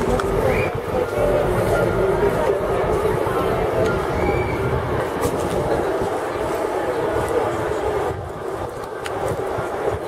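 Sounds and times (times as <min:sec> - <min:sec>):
constant low rumble: 0:00.0 - 0:10.0
crowd murmuring: 0:00.0 - 0:10.0
street traffic: 0:00.0 - 0:10.0.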